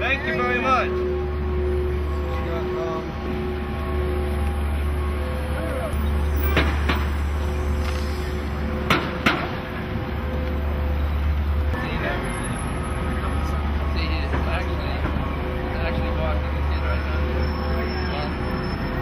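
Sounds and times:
low traffic rumble: 0.0 - 19.0
voices of passers-by: 0.0 - 19.0.

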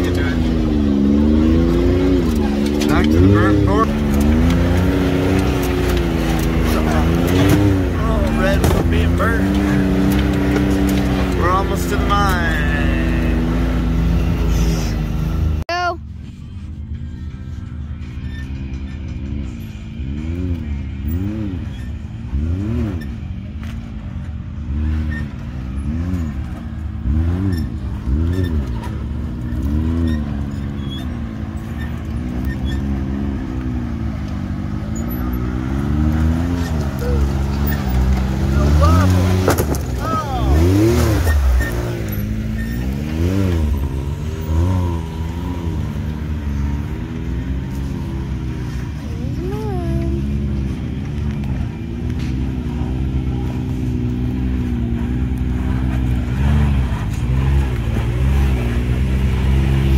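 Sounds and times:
engine revving in throttle blips: 0.0 - 15.7, 17.6 - 59.9.

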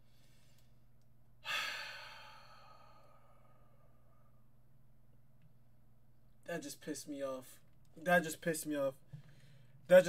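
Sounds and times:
faint electrical hum: 0.0 - 10.0
man sighing: 1.4 - 3.8.

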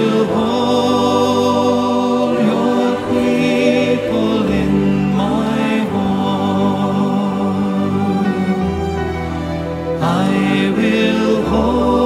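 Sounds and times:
choir singing held notes: 0.0 - 12.0
steady accompaniment: 0.0 - 12.0.

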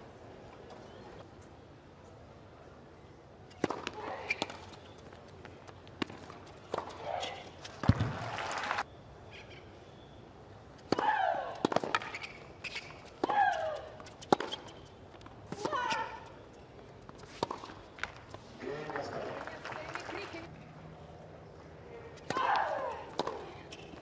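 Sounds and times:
tennis balls struck by rackets: 3.5 - 4.9, 6.0 - 8.2, 10.8 - 16.4, 17.1 - 19.3, 22.2 - 24.0.

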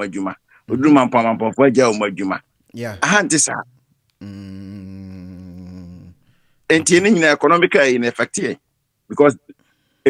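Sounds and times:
man humming low note: 4.2 - 7.2.

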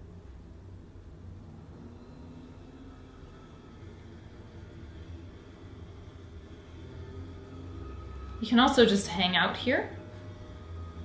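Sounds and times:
faint high whine: 0.0 - 11.0
low steady hum: 0.0 - 11.0.

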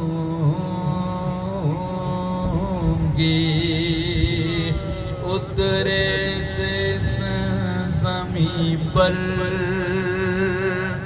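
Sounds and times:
men chanting over loudspeaker: 0.0 - 11.0
steady low drone: 0.0 - 11.0.

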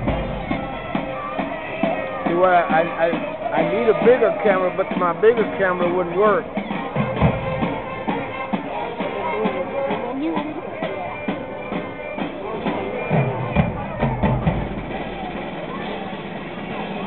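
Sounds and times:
marching band playing: 0.0 - 17.0
people talking in crowd: 0.0 - 17.0.

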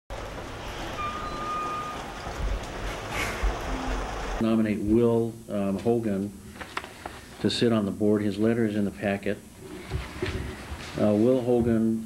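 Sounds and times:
high whistle-like tone: 1.0 - 2.0.

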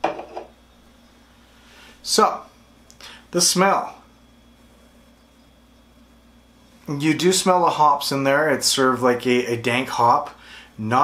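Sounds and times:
can knocking on desk: 0.0 - 0.5.

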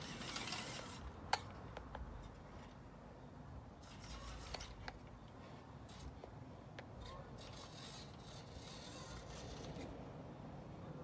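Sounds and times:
small electric motor whirring: 0.0 - 1.2, 3.8 - 5.0, 7.0 - 10.0.

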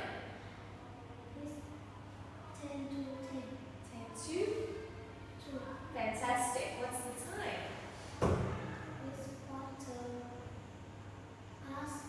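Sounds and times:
loud thump: 8.2 - 8.7.

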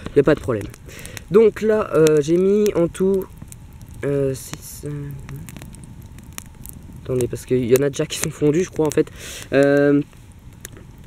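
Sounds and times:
campfire crackling: 0.0 - 11.0
sharp pops from fire: 0.0 - 11.0.

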